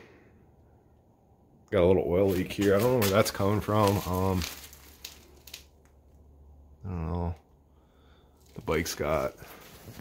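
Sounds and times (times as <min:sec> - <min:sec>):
man talking: 0:01.7 - 0:04.7, 0:06.8 - 0:07.5, 0:08.5 - 0:09.5.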